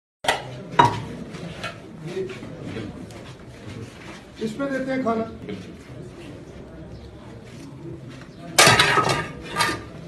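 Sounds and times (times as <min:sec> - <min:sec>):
metal dishes clanking: 0:08.6 - 0:10.0.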